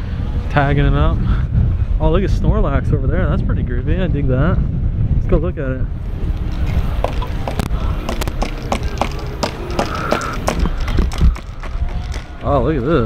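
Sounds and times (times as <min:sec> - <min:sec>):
wind buffeting microphone: 0:00.0 - 0:13.0
footsteps on sand: 0:06.1 - 0:13.0.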